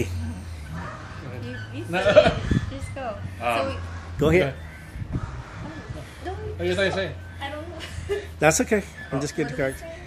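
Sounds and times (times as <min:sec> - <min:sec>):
people laughing: 0:07.7 - 0:08.6.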